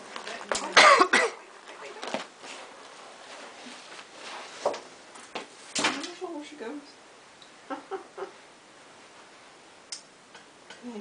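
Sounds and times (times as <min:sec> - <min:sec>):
person laughing: 0:07.7 - 0:08.4.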